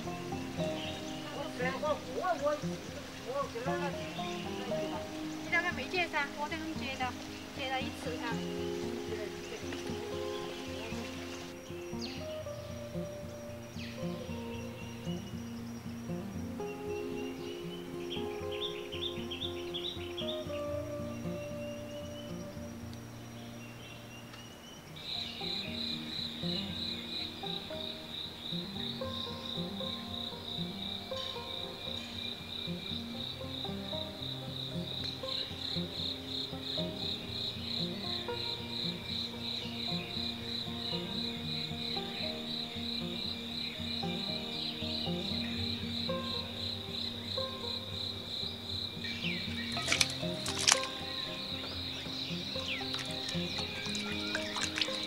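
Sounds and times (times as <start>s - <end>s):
faint insect chirps: 0.0s - 55.0s
high-pitched insect trill: 0.0s - 55.0s
soft background music: 0.0s - 55.0s.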